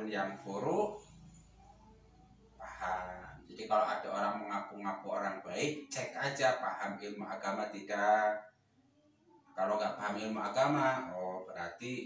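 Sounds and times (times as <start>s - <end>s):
man talking: 0.0s - 1.0s, 2.6s - 8.4s, 9.6s - 12.0s.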